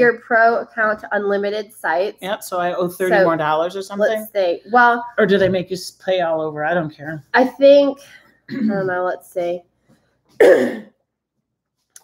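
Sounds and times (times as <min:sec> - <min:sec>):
woman clearing throat: 0:08.5 - 0:09.0, 0:10.4 - 0:11.0.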